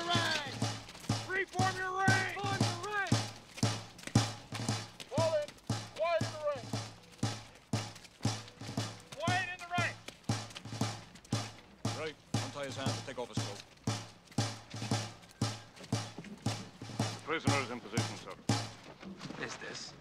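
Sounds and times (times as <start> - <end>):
indistinct voices: 0.0 - 3.4
field drum beating slow cadence: 0.0 - 19.8.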